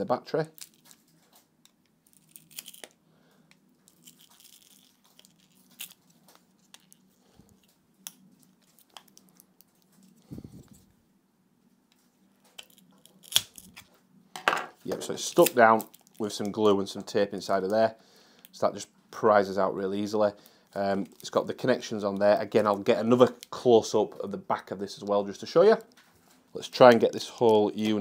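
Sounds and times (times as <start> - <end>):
tape crinkling: 0.5 - 10.9, 11.9 - 14.0, 15.0 - 16.7.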